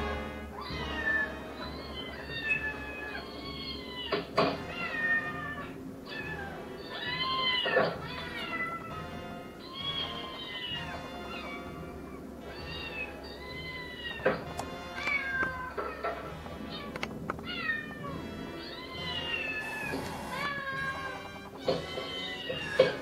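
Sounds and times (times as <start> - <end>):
background music: 0.0 - 23.0
cats meowing: 0.1 - 23.0.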